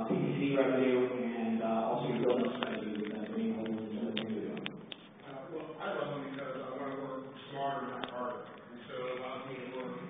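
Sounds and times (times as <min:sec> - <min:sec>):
indistinct speech in large room: 0:00.0 - 0:10.0.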